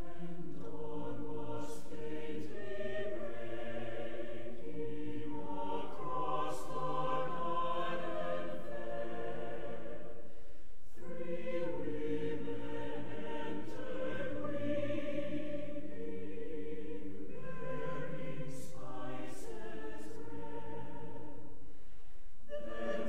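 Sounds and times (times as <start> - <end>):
choir singing: 0.0 - 10.3, 10.9 - 21.6, 22.5 - 23.0.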